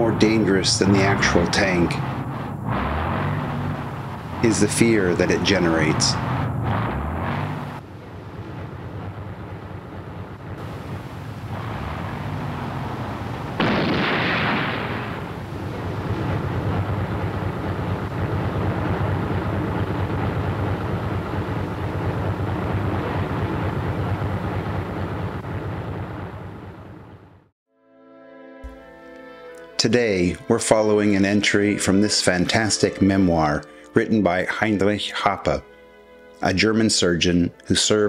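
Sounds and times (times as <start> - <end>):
rumbling battle din: 0.0 - 24.8
loud blast: 10.6 - 20.2.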